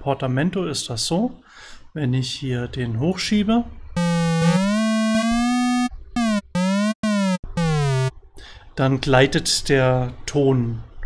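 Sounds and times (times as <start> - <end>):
synthesizer notes gliding in pitch: 4.0 - 8.1.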